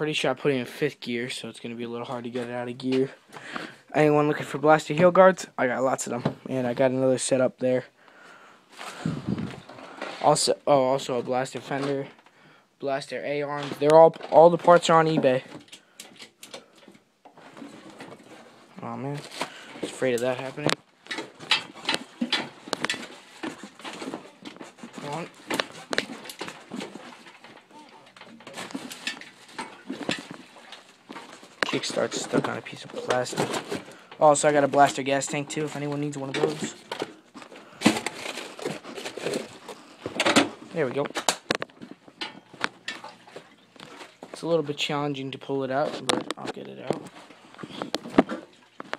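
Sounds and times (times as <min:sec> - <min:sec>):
rustling close to microphone: 0:08.7 - 0:11.8
hard objects knocking and clunking: 0:08.9 - 0:10.2, 0:19.3 - 0:34.0, 0:35.9 - 0:44.4, 0:46.0 - 0:48.9.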